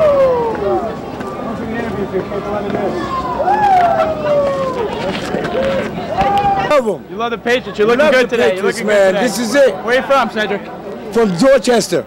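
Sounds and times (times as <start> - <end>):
street crowd noise: 0.0 - 12.0.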